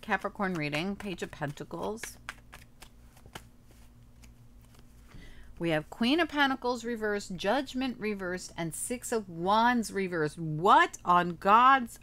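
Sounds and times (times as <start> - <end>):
cards shuffling clicks: 0.0 - 5.2
steady low hum: 0.0 - 12.0
faint card rustling: 0.1 - 5.6.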